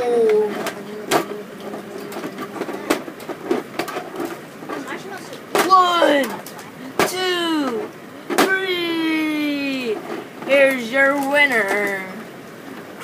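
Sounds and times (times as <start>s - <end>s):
boy exclaiming: 0.0s - 1.5s, 4.8s - 6.5s, 7.1s - 7.8s
light knocks of plastic toys: 2.1s - 8.6s.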